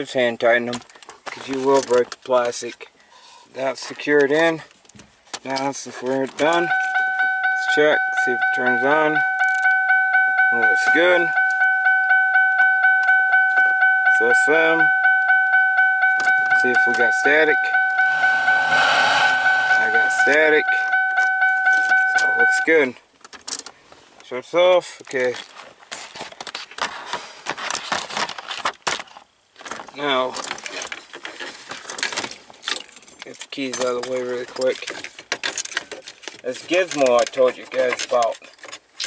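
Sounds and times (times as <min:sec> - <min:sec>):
car keys jangling: 0:06.1 - 0:08.5, 0:19.8 - 0:22.6
car electronic warning chime: 0:06.4 - 0:22.9.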